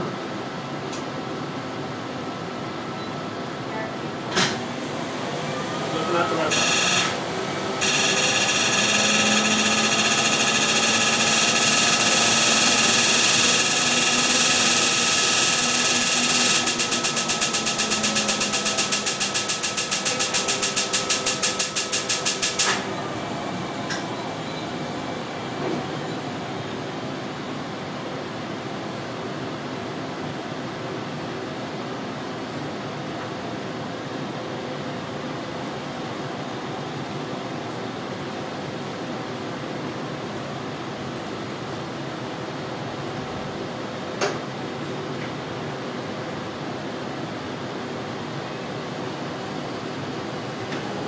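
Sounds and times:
equipment hum: 0:00.0 - 0:51.0
laser buzzing and pulsing: 0:06.0 - 0:07.2, 0:07.8 - 0:22.5.

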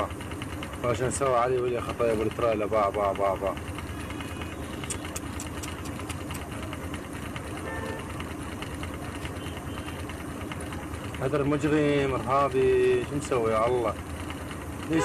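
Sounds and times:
vehicle engine idling: 0:00.0 - 0:15.0.

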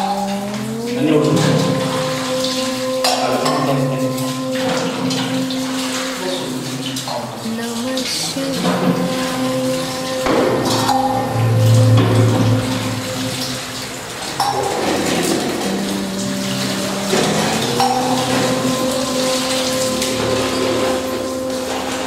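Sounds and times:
brass vessels clinking: 0:00.0 - 0:22.0
droning devotional music: 0:00.0 - 0:22.0
water splashing and trickling on stone: 0:00.0 - 0:22.0.

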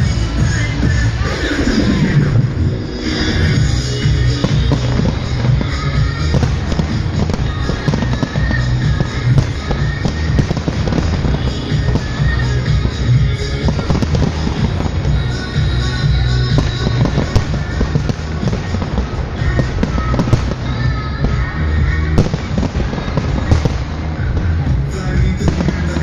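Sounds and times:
fireworks bursting and crackling: 0:00.0 - 0:26.0
loud music with heavy bass: 0:00.0 - 0:26.0.

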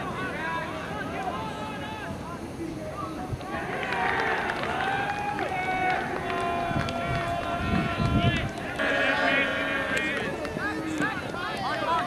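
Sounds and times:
people shouting and calling: 0:03.4 - 0:12.0.

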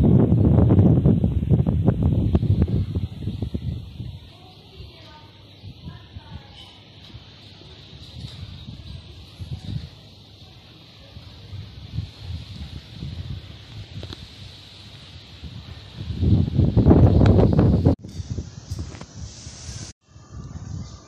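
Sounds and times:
leaves rustling in wind: 0:00.0 - 0:21.0
wind rumbling on microphone: 0:00.0 - 0:21.0.

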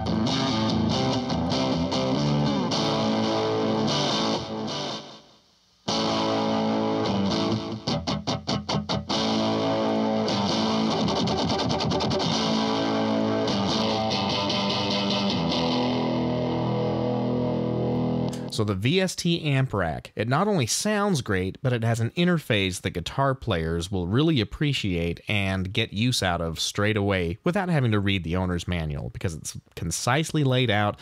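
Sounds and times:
distorted electric guitar with echo: 0:00.0 - 0:18.6.

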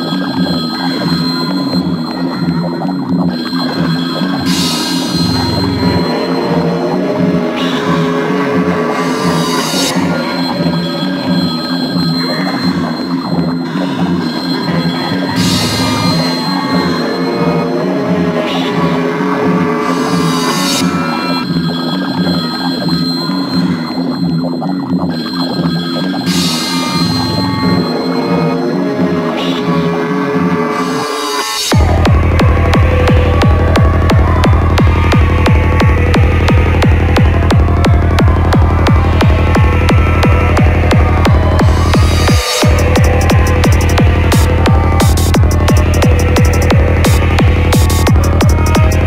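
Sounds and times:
pulsing synth bass line: 0:00.0 - 0:30.8, 0:31.7 - 0:49.0
steady high synth tone: 0:00.0 - 0:49.0.

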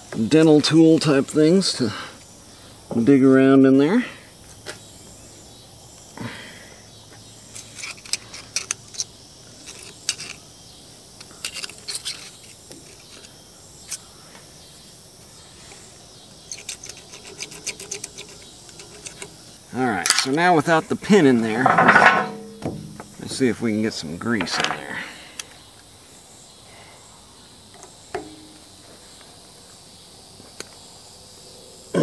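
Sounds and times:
metal pick scraping metallic clicks: 0:07.5 - 0:10.4, 0:11.2 - 0:14.0, 0:16.5 - 0:20.4.

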